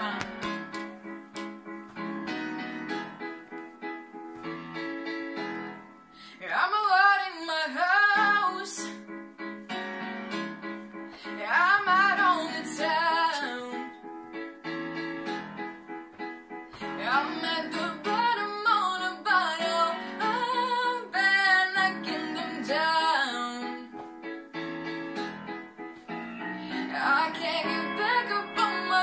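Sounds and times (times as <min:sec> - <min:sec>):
girl singing: 0:00.0 - 0:00.8, 0:06.3 - 0:09.0, 0:11.2 - 0:14.1, 0:16.8 - 0:24.0, 0:26.7 - 0:29.0
piano accompaniment: 0:00.0 - 0:29.0.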